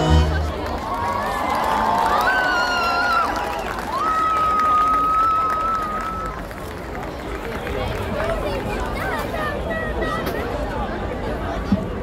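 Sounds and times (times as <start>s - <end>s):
crowd chattering: 0.0s - 12.0s.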